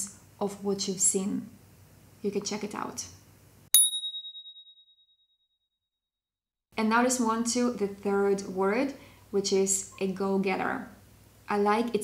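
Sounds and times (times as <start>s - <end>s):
high clear ding: 3.8s - 4.9s.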